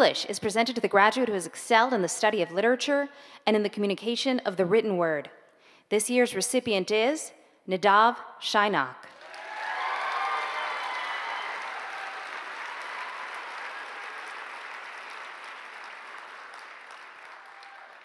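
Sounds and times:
audience applauding: 9.1 - 18.0
audience cheering: 9.1 - 18.0.

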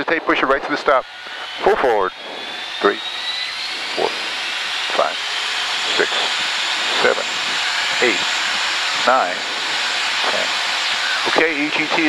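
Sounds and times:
jet engine spooling up: 0.0 - 12.0
thin rising whine: 0.0 - 12.0.

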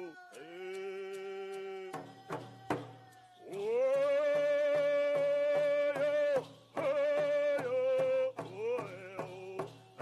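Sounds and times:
hand drums beating: 0.0 - 10.0.

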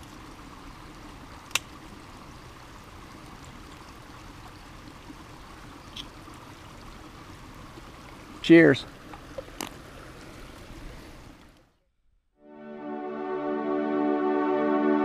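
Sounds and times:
creek rushing: 0.0 - 11.6.

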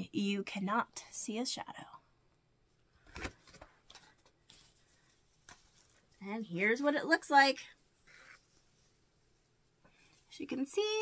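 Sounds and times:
paper rustling: 3.1 - 6.2.

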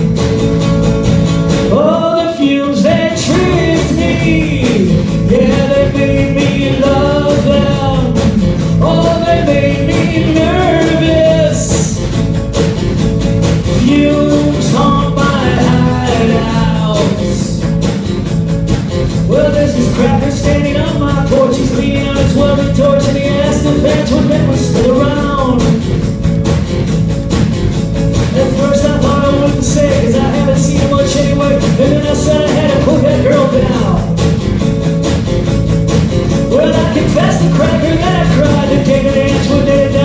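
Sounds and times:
acoustic guitar: 0.0 - 40.0
drum kit: 0.0 - 40.0
male lead vocal: 1.7 - 12.1, 13.7 - 17.8, 19.2 - 26.0, 28.3 - 34.2, 36.4 - 40.0.

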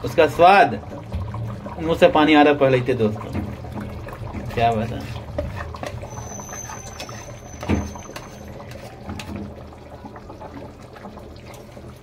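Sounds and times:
curry bubbling and crackling: 0.0 - 12.0
liquid pouring: 0.0 - 12.0.

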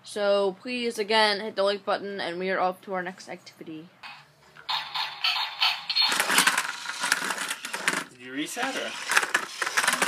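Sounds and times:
toy car electronic engine sounds: 4.7 - 10.0.

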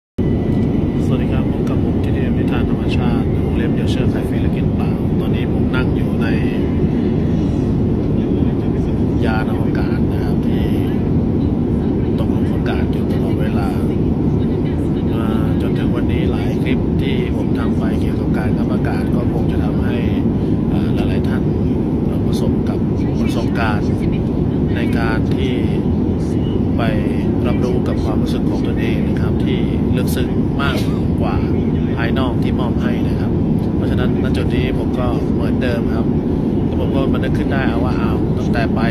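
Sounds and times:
loud low rumble: 0.2 - 38.9
man talking: 0.8 - 7.1, 8.1 - 11.2, 12.0 - 14.0, 15.0 - 24.1, 24.7 - 26.0, 26.7 - 38.9.

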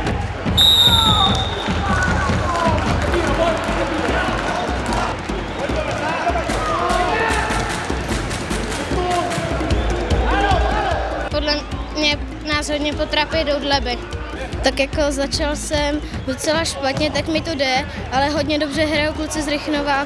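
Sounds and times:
referee's whistle blast: 0.6 - 1.9.

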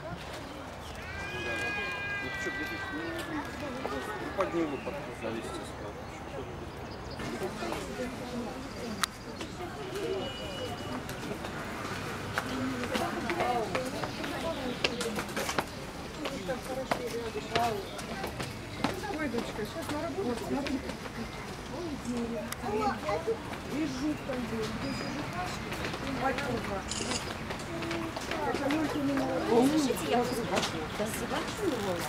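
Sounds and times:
people talking: 0.0 - 6.6, 7.2 - 11.5, 12.3 - 32.0
background chatter: 0.0 - 32.0.

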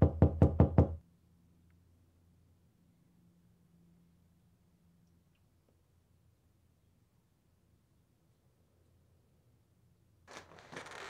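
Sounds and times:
knocks on a door: 0.0 - 1.0.

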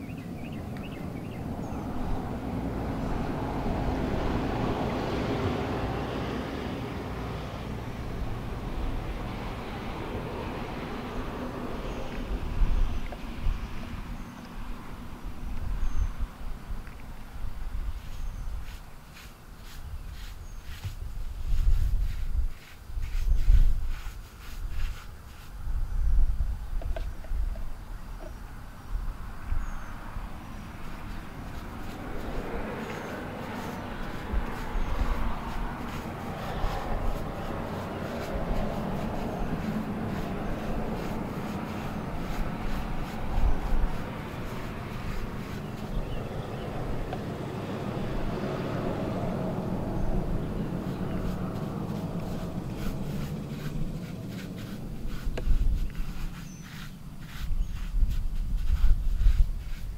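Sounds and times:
wind buffeting microphone: 0.0 - 18.9, 19.6 - 59.9
low vehicle rumble: 0.0 - 23.9, 25.6 - 59.7
brush scrubbing stone wall: 17.3 - 25.7, 30.2 - 59.9.

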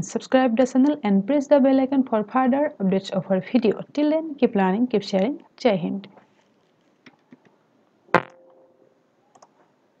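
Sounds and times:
faint computer mouse clicks: 9.3 - 9.6.

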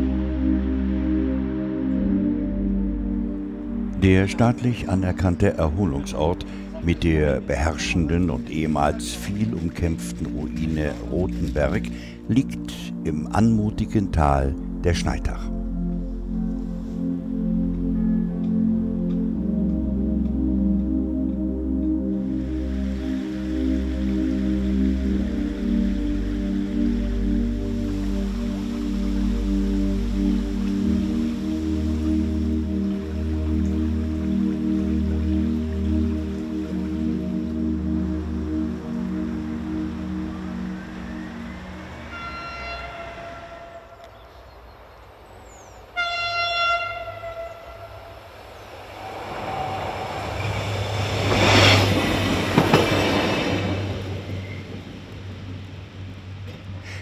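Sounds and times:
soft background music: 0.0 - 43.0, 51.1 - 56.4
train horn: 38.6 - 44.3, 46.0 - 54.6
train wheels rushing on rail: 48.4 - 55.8.

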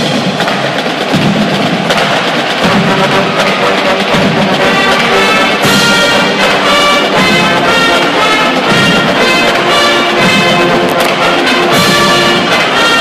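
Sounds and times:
drums and percussion: 0.0 - 13.0
marching band playing: 0.0 - 13.0
held brass chords: 2.6 - 13.0.

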